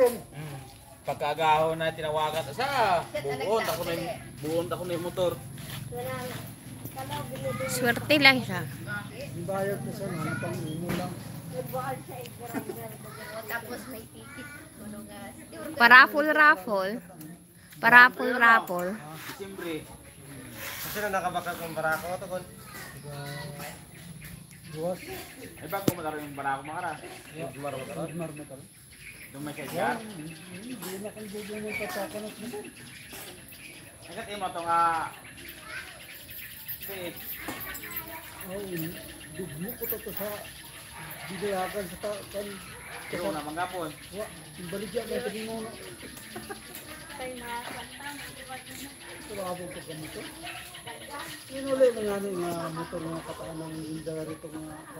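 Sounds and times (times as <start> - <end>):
faint conversational voices: 0.0 - 54.9.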